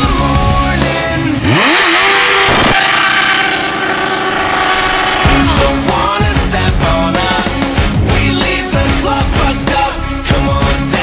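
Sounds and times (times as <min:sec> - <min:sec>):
motorcycle engine revving: 0:00.0 - 0:11.0
rock music: 0:00.0 - 0:11.0.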